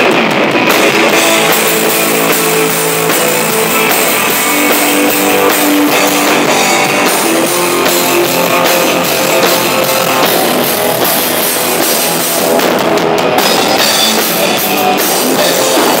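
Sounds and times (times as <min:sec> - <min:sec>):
loud live rock music: 0:00.0 - 0:16.0.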